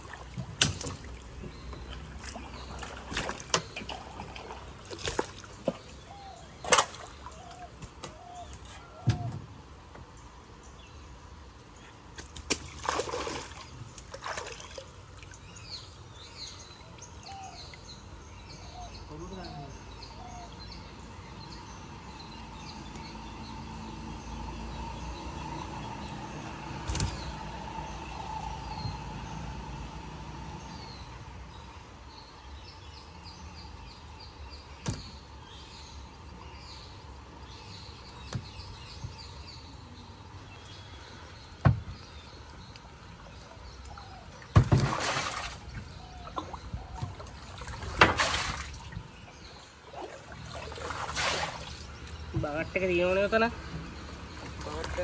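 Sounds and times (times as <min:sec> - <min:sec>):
water splashing and dripping: 0:00.0 - 0:08.8, 0:11.6 - 0:17.8, 0:22.3 - 0:31.6, 0:33.0 - 0:35.5, 0:40.3 - 0:52.9, 0:53.5 - 0:55.0
birds chirping: 0:00.0 - 0:55.0.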